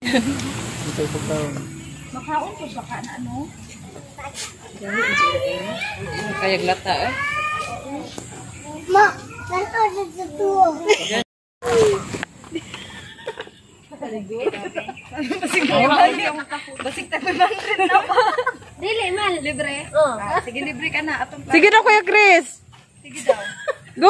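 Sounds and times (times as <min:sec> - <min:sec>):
chatter of children and adults: 0:00.9 - 0:12.7, 0:13.7 - 0:24.0
children calling out: 0:04.8 - 0:08.1, 0:11.6 - 0:12.2.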